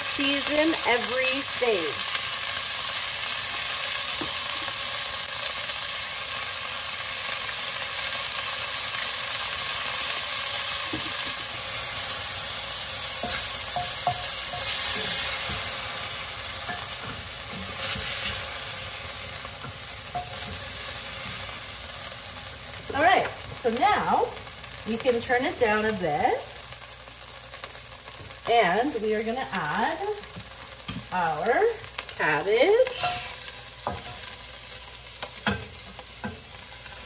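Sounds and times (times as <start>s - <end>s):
meat sizzling in oil: 0.0s - 37.0s.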